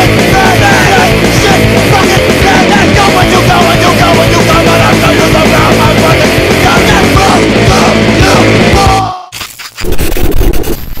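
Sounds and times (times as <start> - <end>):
heavy rock music: 0.0 - 9.3
crackling static and glitch noise: 9.3 - 11.0.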